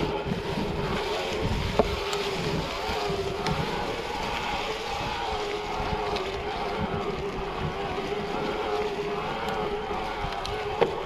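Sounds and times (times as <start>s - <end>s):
bike tyres rumbling over ground: 0.0s - 11.0s
wavering whine from bike: 0.0s - 11.0s
wind on microphone: 0.0s - 11.0s.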